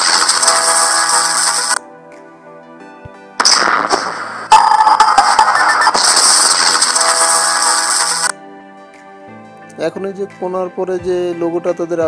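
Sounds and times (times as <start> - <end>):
quiet background music: 0.3 - 5.9, 6.8 - 12.0.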